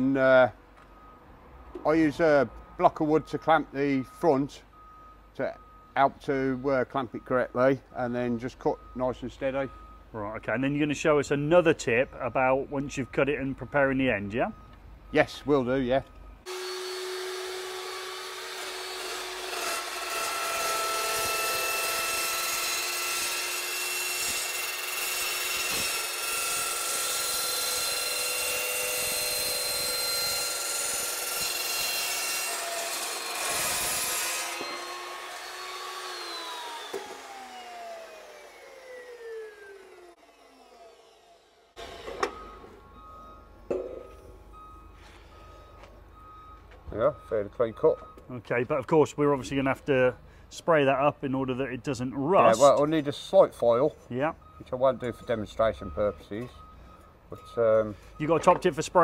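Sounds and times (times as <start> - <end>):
saw blade spinning down: 16.5 - 42.7
chop saw cutting steel: 16.5 - 43.1, 52.4 - 52.9.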